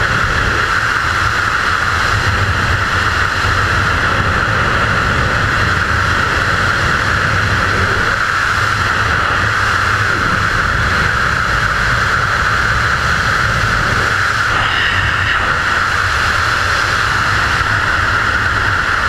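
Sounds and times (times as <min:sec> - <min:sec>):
freefall wind rushing over microphone: 0:00.0 - 0:19.0.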